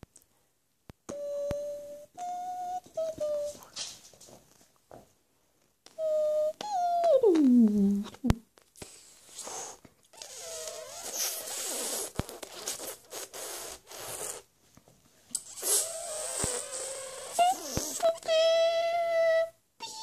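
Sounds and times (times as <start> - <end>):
person making high-pitched vocal noises: 1.1 - 3.7, 5.9 - 8.4, 15.5 - 20.0.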